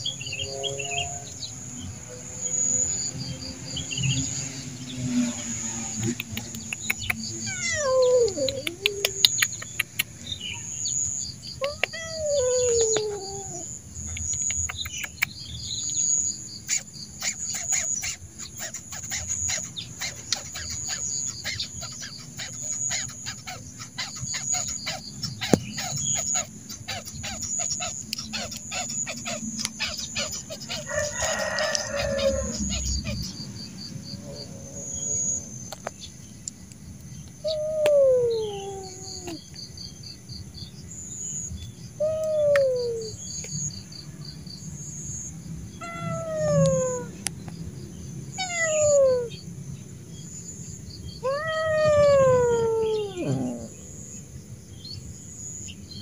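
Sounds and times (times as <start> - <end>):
insects chirping: 0.0 - 56.0
cat meowing: 7.4 - 9.4, 11.6 - 13.7, 45.8 - 47.1, 48.4 - 49.3, 51.2 - 53.8.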